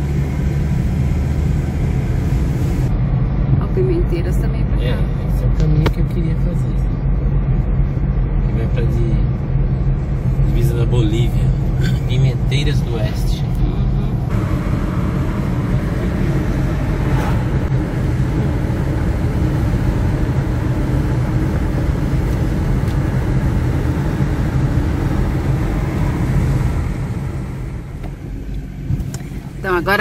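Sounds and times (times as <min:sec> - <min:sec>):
vehicle road and engine rumble: 0:00.0 - 0:30.0.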